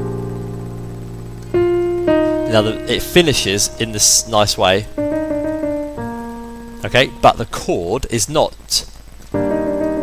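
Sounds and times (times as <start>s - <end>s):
digital piano playing jazz chords: 0.0s - 7.9s, 9.3s - 10.0s.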